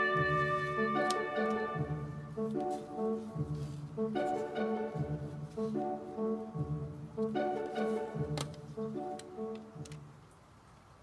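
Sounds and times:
bouncy pitched music notes: 0.0s - 10.0s.

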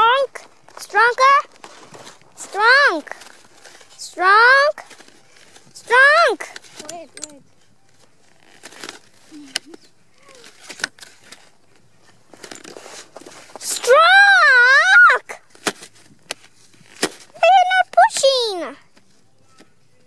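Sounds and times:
high-pitched wordless voice: 0.0s - 1.5s, 2.4s - 3.2s, 4.0s - 4.8s, 5.8s - 7.4s, 13.6s - 15.4s, 17.4s - 18.8s.

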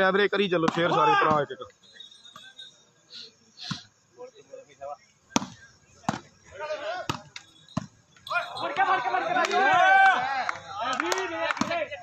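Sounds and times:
people shouting: 0.8s - 1.4s, 6.5s - 7.2s, 8.3s - 12.0s
volleyball hand slaps: 9.4s - 11.9s.

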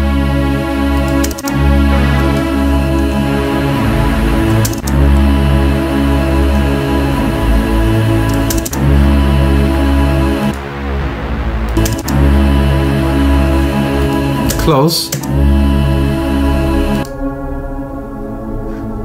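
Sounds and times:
low synthesizer pad: 0.0s - 19.0s.

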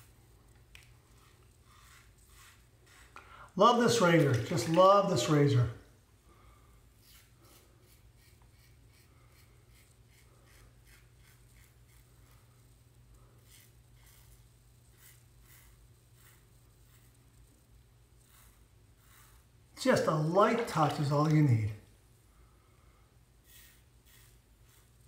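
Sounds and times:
razor scraping stubble: 0.0s - 5.6s, 7.0s - 21.4s, 23.4s - 25.0s.

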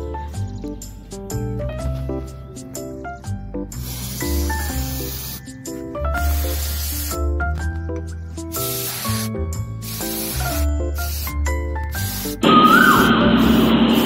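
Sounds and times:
background music with low bass: 0.0s - 14.0s
aerosol spray hissing: 3.7s - 7.6s, 8.3s - 14.0s.

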